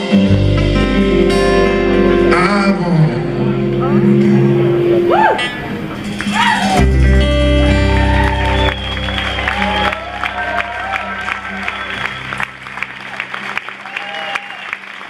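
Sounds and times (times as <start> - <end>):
acoustic guitar and upright bass chord: 0.2 - 6.2, 6.8 - 9.0
audience clapping and cheering: 5.1 - 15.0.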